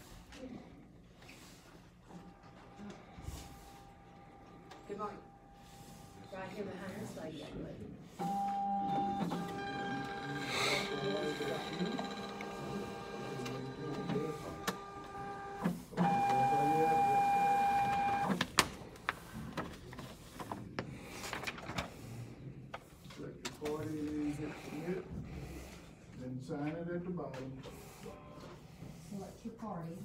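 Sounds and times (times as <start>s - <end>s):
print mechanism whining: 8.2s - 18.3s.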